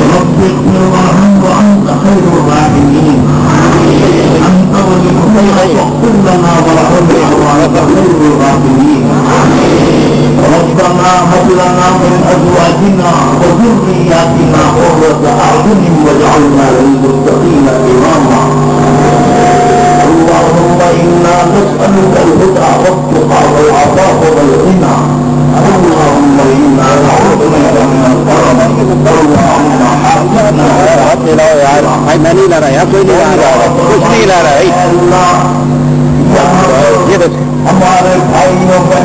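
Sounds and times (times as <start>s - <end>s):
crowd noise: 0.0s - 39.0s
steady low hum: 0.0s - 39.0s
men chanting a prayer: 10.4s - 35.7s.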